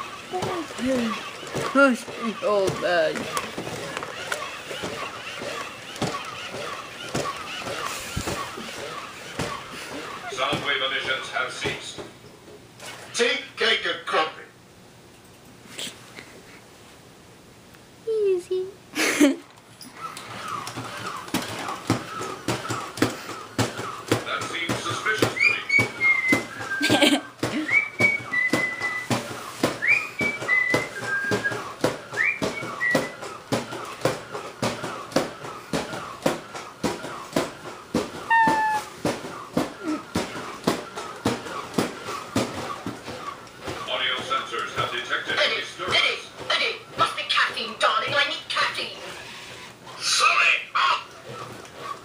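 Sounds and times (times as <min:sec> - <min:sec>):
toy robot motors clicking: 0:00.0 - 0:10.2
rising whistle-like chirps: 0:25.4 - 0:26.8.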